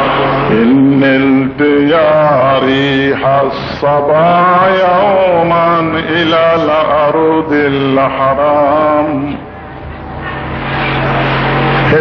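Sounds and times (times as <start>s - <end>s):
melodic devotional chanting: 0.0s - 12.0s.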